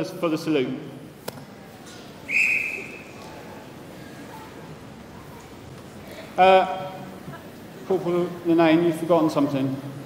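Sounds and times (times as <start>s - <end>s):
whistle blast: 2.3s - 3.2s.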